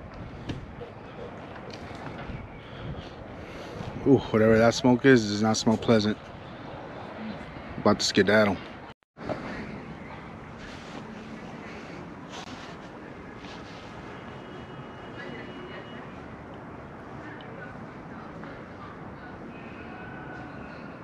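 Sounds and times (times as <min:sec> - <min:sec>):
outdoor rumble and hiss: 0:00.0 - 0:21.0
faint distant voices: 0:00.2 - 0:21.0.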